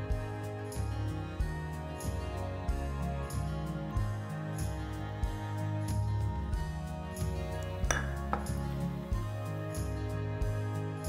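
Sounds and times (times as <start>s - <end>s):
gentle guitar music: 0.0s - 11.0s
glass clinking against glass bowl: 7.8s - 8.6s.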